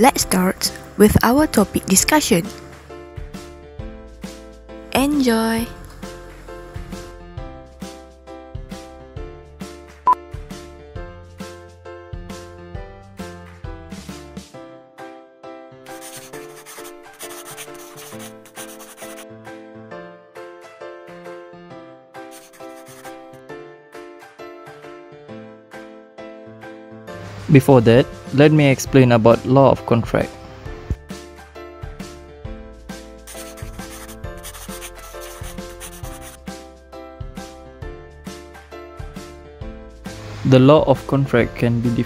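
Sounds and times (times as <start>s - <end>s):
melodic background music: 0.0s - 42.0s
marker scribbling: 15.9s - 19.2s, 22.3s - 23.4s, 33.3s - 36.4s.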